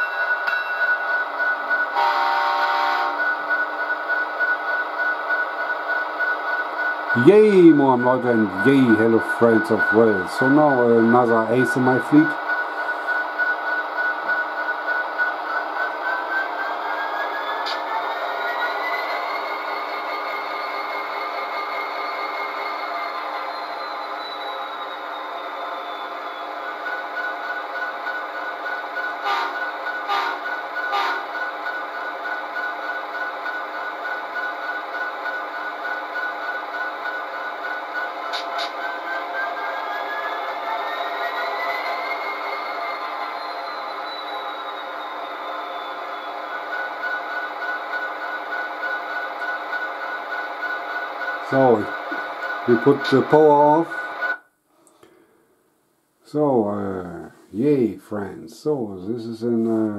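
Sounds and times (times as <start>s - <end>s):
diesel locomotive engine through small speaker: 0.0s - 54.4s.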